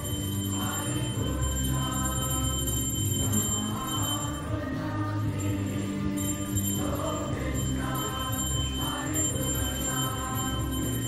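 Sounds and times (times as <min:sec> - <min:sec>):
devotional music: 0:00.0 - 0:11.0
metallic ringing: 0:00.0 - 0:11.0.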